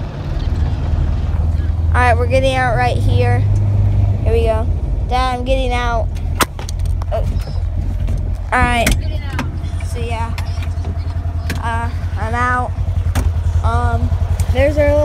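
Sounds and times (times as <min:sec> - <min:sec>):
car cabin rumble: 0:00.0 - 0:15.0
person making wordless sounds: 0:08.4 - 0:12.9.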